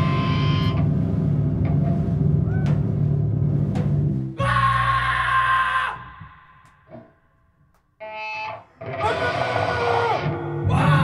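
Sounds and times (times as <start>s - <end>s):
amplifier hum: 0.0s - 4.4s.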